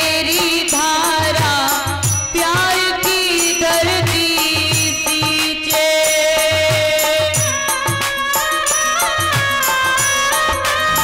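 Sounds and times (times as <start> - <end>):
woman singing devotional song: 0.0 - 11.0.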